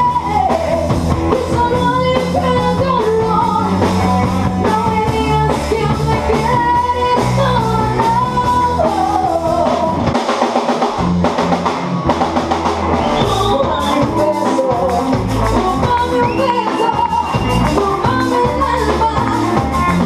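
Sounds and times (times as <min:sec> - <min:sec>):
woman singing: 0:00.0 - 0:10.2, 0:13.1 - 0:20.0
live rock pop band: 0:00.0 - 0:20.0.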